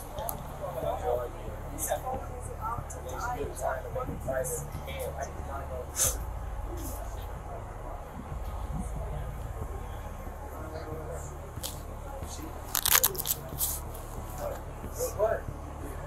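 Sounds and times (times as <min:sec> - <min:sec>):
low steady rumble: 0:00.0 - 0:16.0.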